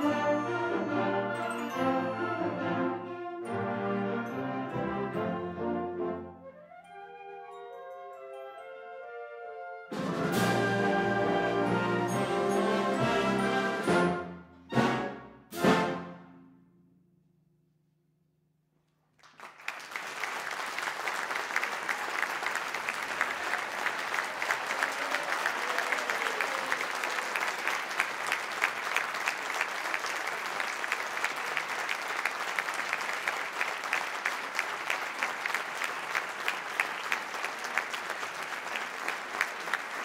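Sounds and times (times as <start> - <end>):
audience applause: 19.2 - 40.0.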